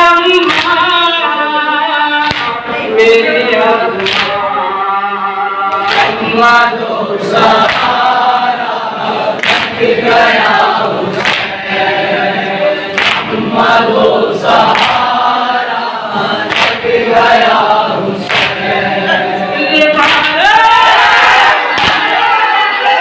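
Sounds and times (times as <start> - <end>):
men chanting in unison: 2.3 - 23.0.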